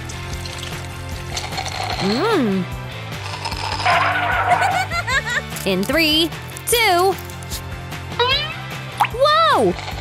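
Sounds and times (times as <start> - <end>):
slurping liquid through a straw: 0.1 - 2.4, 3.1 - 4.7, 9.6 - 10.0.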